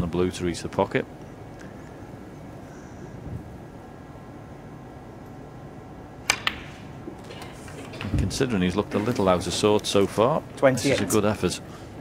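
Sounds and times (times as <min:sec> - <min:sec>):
low hum of hushed hall: 0:00.0 - 0:12.0.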